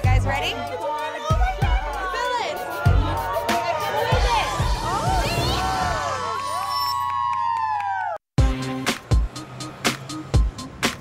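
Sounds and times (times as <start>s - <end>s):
women screaming: 1.0s - 8.2s.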